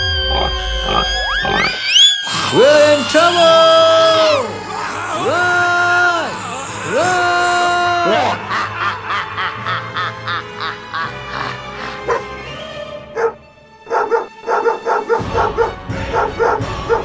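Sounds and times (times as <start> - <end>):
cartoon pig squealing: 0.0 - 8.5
voice-like wailing calls: 0.0 - 8.5
background music: 0.0 - 17.0.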